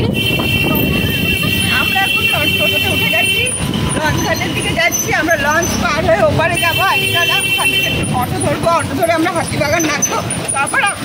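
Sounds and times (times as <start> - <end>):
rickshaw rumble and road noise: 0.0 - 11.0
voices talking: 0.0 - 11.0.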